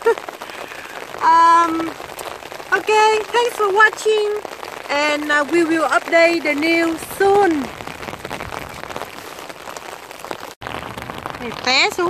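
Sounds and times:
heavy rain on an umbrella: 0.0s - 12.0s.

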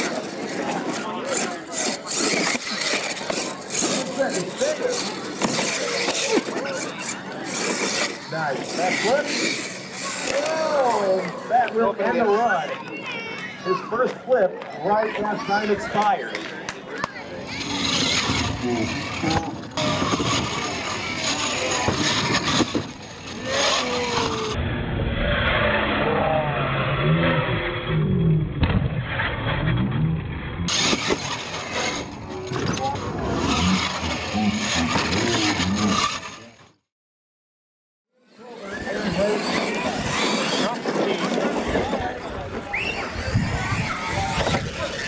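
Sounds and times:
remote-control truck motor: 0.0s - 13.7s, 15.3s - 24.6s, 30.7s - 36.8s, 38.2s - 45.0s
spectators' voices: 0.0s - 24.6s, 30.7s - 36.6s, 38.2s - 45.0s.

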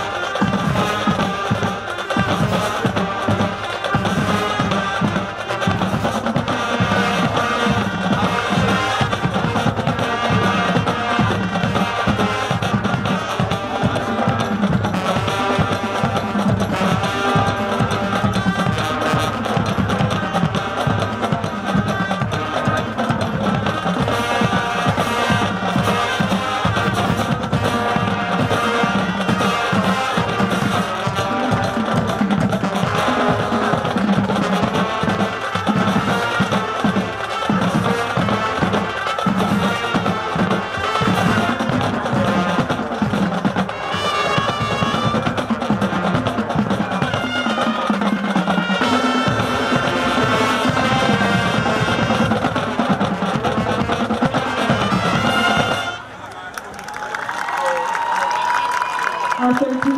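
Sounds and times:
tenor drums beating: 0.0s - 56.2s
marching band playing: 0.0s - 59.9s.

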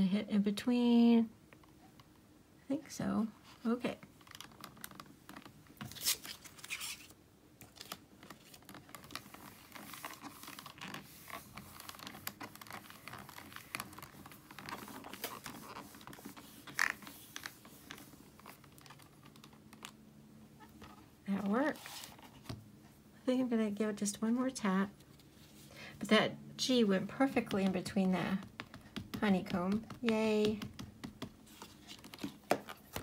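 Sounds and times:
paper rustling: 4.3s - 20.0s, 20.7s - 22.6s, 27.2s - 33.0s.

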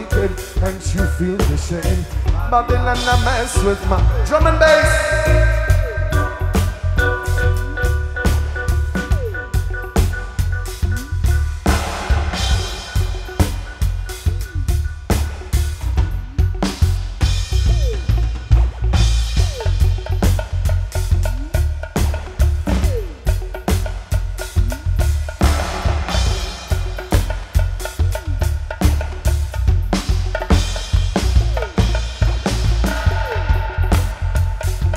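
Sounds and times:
drum kit fast beat: 0.0s - 34.9s
heavy bass line: 0.0s - 34.9s
falling electronic sweeps: 2.9s - 23.4s.

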